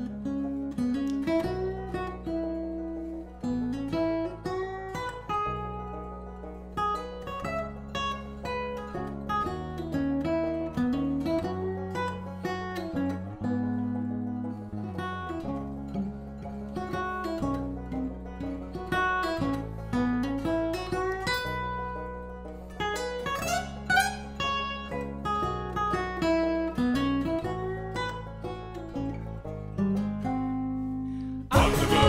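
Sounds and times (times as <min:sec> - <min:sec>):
acoustic guitar solo: 0:00.0 - 0:32.0.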